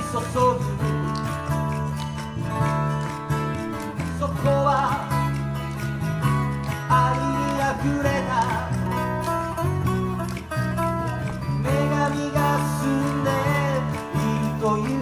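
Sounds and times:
acoustic guitars strummed: 0.0 - 15.0
electric bass line: 0.0 - 15.0.

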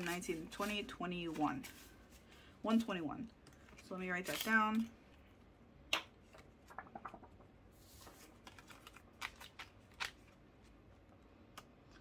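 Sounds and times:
paper and plastic rustling: 0.0 - 2.4, 3.6 - 4.9, 7.8 - 10.4.

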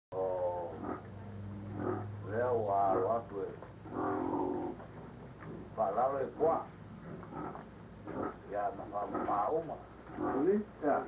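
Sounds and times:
low electrical hum: 0.1 - 11.0.

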